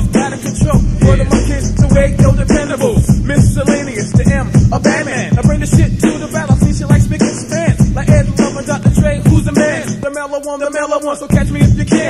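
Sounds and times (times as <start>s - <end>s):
rapping over a drum beat: 0.0s - 12.0s.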